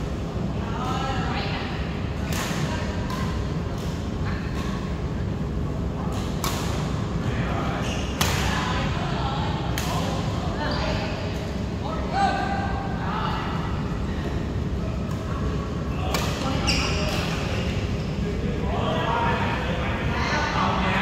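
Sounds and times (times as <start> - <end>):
voices: 0.3 - 21.0
racket hitting shuttlecock: 6.1 - 6.9.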